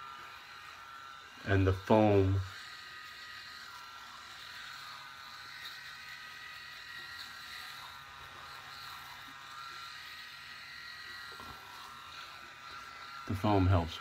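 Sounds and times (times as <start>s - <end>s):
electric shaver running: 0.0s - 14.0s.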